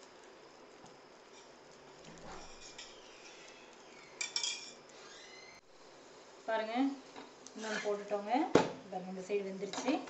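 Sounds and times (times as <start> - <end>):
metal utensil clinking on cookware: 4.2 - 4.8.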